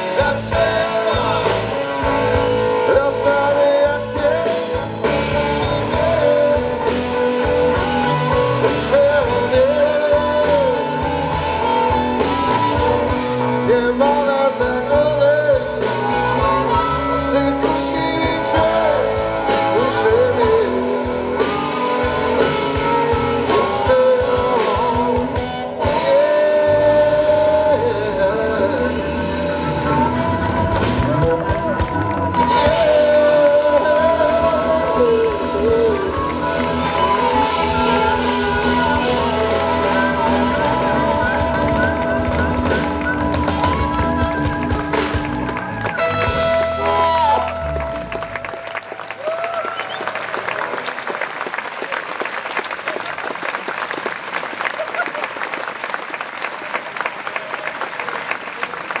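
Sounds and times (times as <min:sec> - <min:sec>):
electric guitar: 0:00.0 - 0:51.0
drums: 0:00.0 - 0:51.5
audience applauding: 0:29.6 - 0:59.0.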